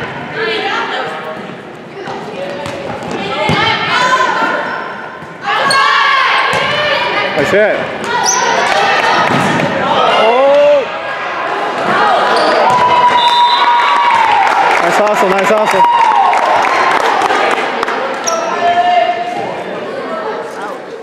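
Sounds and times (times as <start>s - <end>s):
people shouting and cheering: 5.4s - 20.5s
shoe squeaks on hardwood floor: 8.1s - 8.7s.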